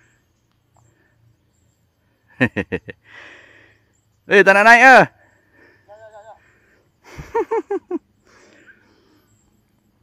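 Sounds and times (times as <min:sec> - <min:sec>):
person laughing: 0:02.4 - 0:03.0, 0:07.0 - 0:08.0.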